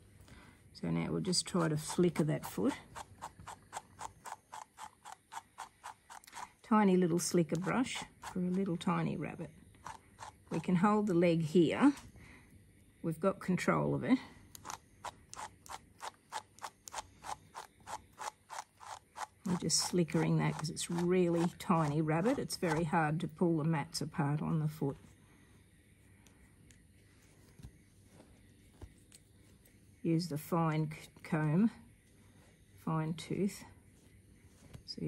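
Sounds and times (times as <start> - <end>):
brush scratching through fur: 1.3 - 9.0, 9.8 - 10.8, 14.6 - 23.0.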